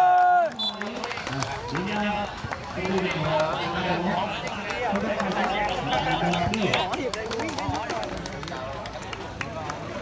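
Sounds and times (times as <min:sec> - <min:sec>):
chatter of voices: 0:00.9 - 0:10.0.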